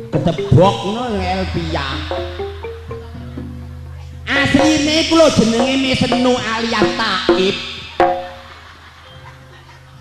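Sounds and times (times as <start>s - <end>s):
gamelan stroke on tuned metal: 0.0s - 9.0s
sustained gamelan tones: 0.0s - 10.0s.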